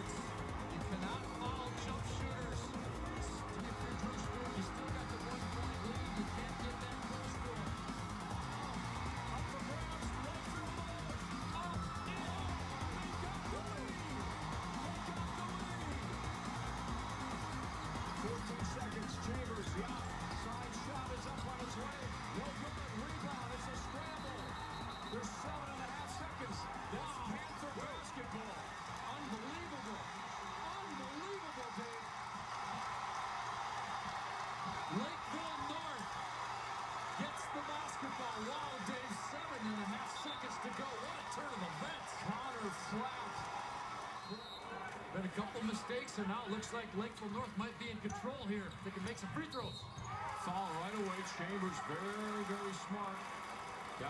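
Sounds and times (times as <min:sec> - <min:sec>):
background music: 0:00.0 - 0:43.4
indistinct crowd voices: 0:00.0 - 0:49.6
arena crowd noise: 0:00.0 - 0:54.0.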